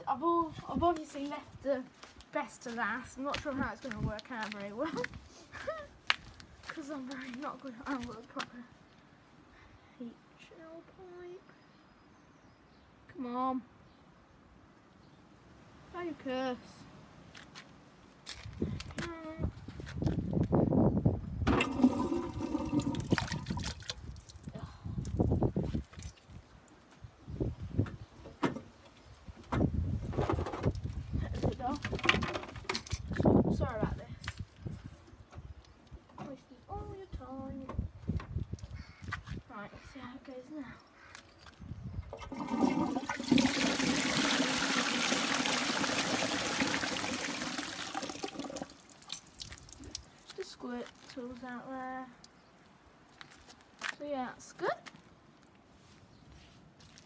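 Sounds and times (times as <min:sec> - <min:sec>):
toilet flushing: 0:21.5 - 0:23.2, 0:42.2 - 0:48.7.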